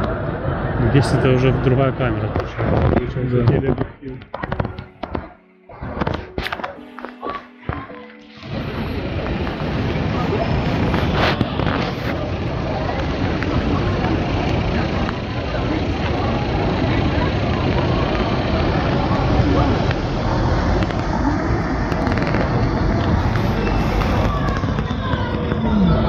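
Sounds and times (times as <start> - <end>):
distant voices: 0.0 - 26.0
traffic rumble: 0.0 - 26.0.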